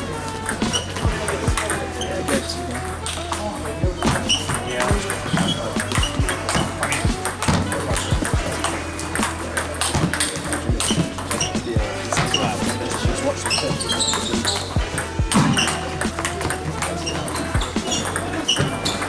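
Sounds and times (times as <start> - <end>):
music with sung vocals: 0.0 - 19.0.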